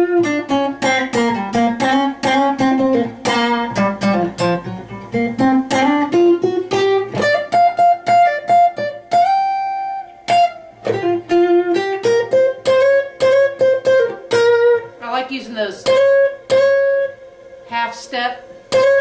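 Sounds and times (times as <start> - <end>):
acoustic guitar blues lead: 0.0 - 19.0.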